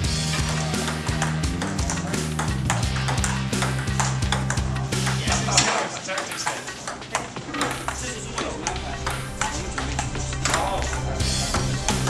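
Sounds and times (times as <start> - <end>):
background music: 0.0 - 12.0
ping-pong ball hitting paddles and table: 0.3 - 12.0.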